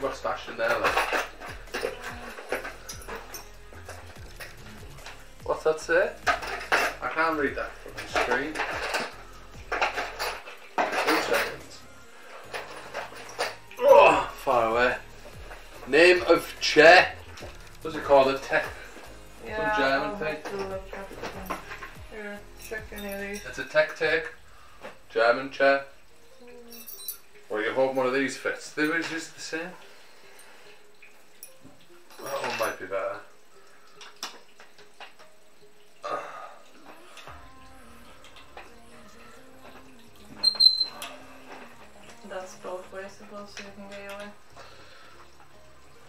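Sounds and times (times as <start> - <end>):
faint background music: 0.0 - 46.0
small metal hardware clinking: 0.7 - 5.2, 26.6 - 27.4
people talking: 19.4 - 21.5, 22.1 - 23.9, 42.2 - 44.3.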